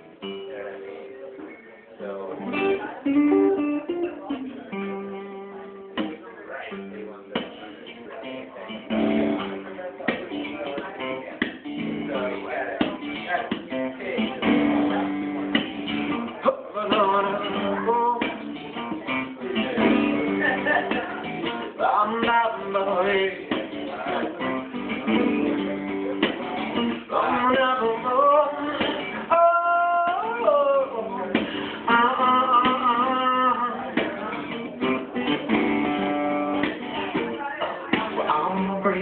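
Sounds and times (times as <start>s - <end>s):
acoustic guitar strumming: 0.0s - 39.0s.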